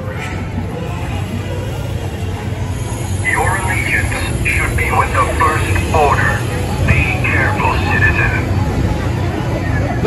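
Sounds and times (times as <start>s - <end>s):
steady low rumble: 0.0s - 10.0s
amplified voice over loudspeaker: 3.3s - 8.6s.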